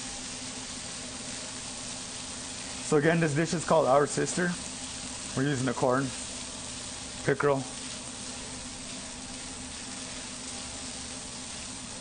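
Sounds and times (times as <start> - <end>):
corn kernels sizzling in skillet: 0.0 - 12.0.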